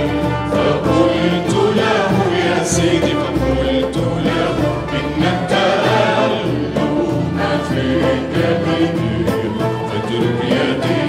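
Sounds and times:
mixed choir singing: 0.0s - 11.0s
orchestral accompaniment: 0.0s - 11.0s.

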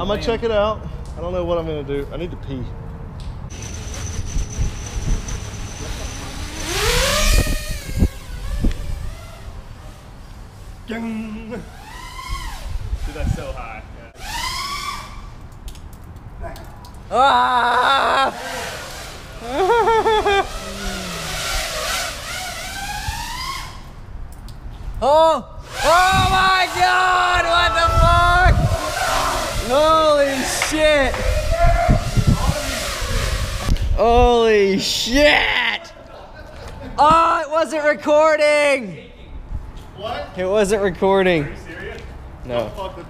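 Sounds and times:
quadcopter motors whining: 3.5s - 10.3s, 11.6s - 13.4s, 14.2s - 15.3s, 18.0s - 24.0s, 27.9s - 33.9s
wind thumps on microphone: 6.4s - 9.7s, 25.6s - 26.5s, 27.6s - 34.4s
people laughing: 17.1s - 18.8s, 19.4s - 21.1s, 35.6s - 37.0s
rush of prop wash: 17.8s - 24.0s, 27.8s - 33.9s.

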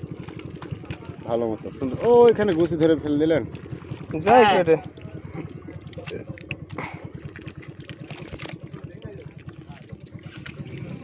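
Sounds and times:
small engine running: 0.0s - 11.0s
hands squelching in wet mud: 2.3s - 11.0s.

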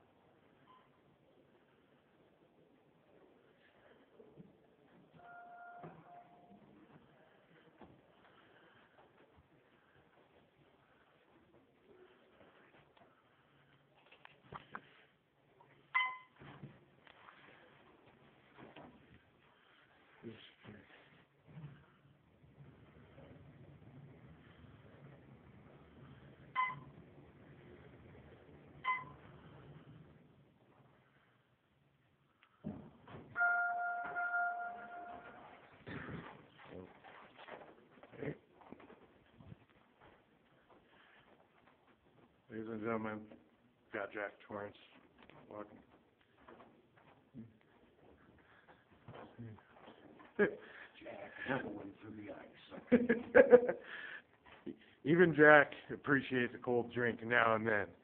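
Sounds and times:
elevator chime: 5.2s - 6.6s, 33.4s - 35.6s
faint high tone: 5.2s - 6.7s, 33.4s - 35.6s.

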